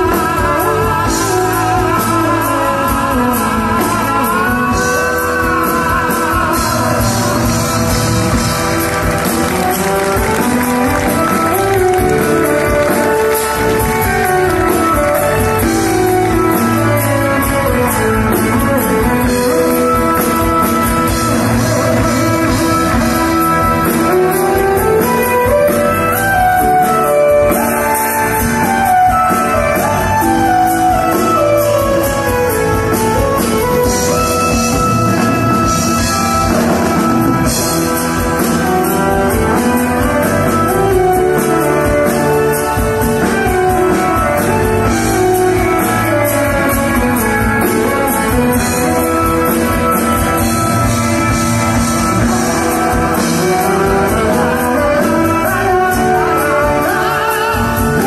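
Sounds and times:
electric guitar: 0.0s - 58.0s
rock band with string orchestra: 0.0s - 58.0s
steady drum beat: 0.0s - 58.0s.

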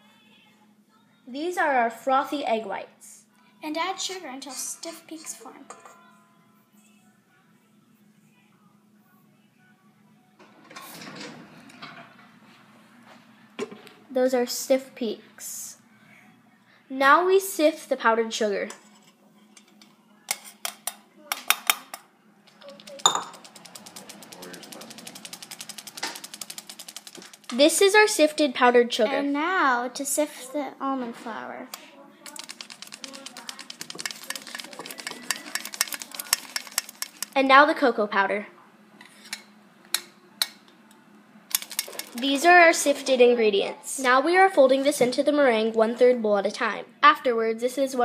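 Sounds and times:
sifter mechanism clicking: 22.6s - 27.6s, 32.3s - 37.4s, 41.5s - 42.2s.

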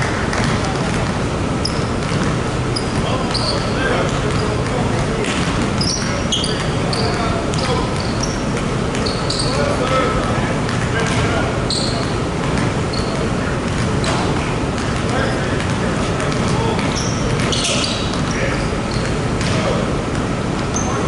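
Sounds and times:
basketballs bouncing on hardwood: 0.0s - 20.3s
sneaker squeaks: 0.3s - 21.0s.

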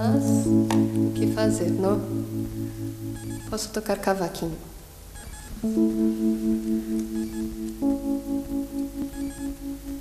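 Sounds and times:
sustained instrumental notes: 0.0s - 4.1s, 4.9s - 10.0s.

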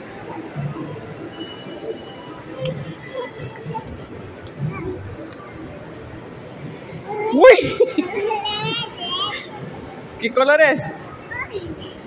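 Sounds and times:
toddler vocalizing: 2.6s - 5.1s.

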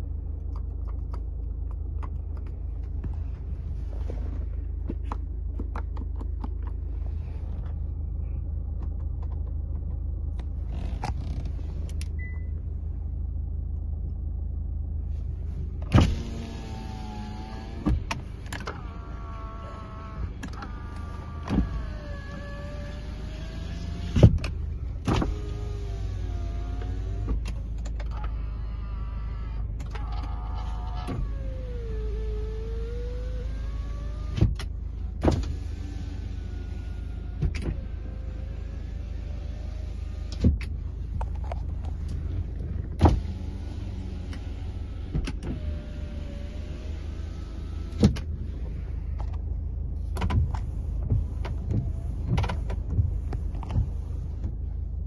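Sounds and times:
car engine idling: 0.0s - 55.0s
power window motor whine: 10.6s - 11.8s, 15.9s - 34.6s, 35.2s - 40.6s, 42.5s - 48.8s.

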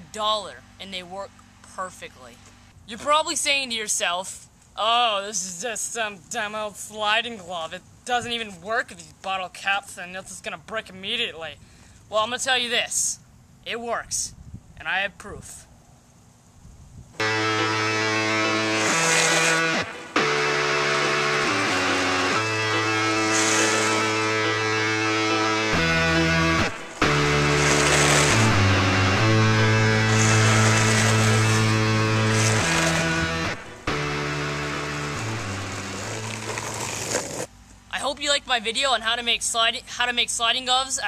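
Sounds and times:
loud held chords music: 17.2s - 36.6s.

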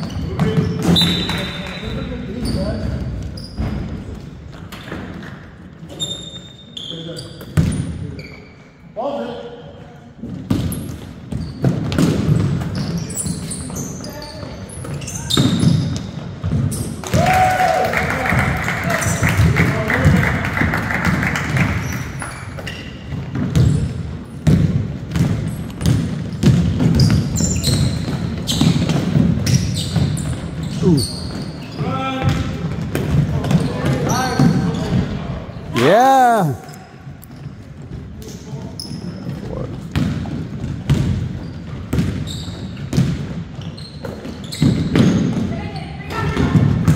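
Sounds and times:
basketball bouncing on hardwood floor: 23.1s - 30.4s, 39.9s - 42.3s, 42.9s - 43.4s
people shouting: 35.7s - 36.7s.

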